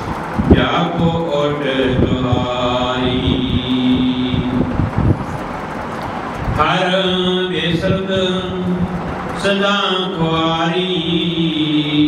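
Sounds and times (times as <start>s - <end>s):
steady rumbling noise: 0.0s - 12.0s
man chanting: 0.5s - 4.7s, 6.6s - 12.0s.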